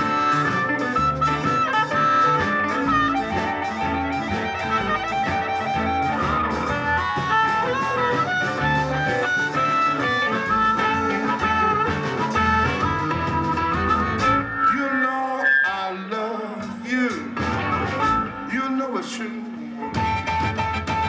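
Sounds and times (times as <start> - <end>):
harmonica solo: 0.0 - 15.9, 17.4 - 18.8, 19.6 - 21.0
blues band playing: 0.0 - 21.0.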